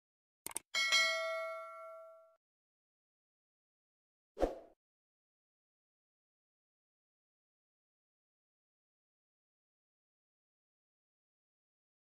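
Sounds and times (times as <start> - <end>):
notification bell ding: 0.8 - 2.4.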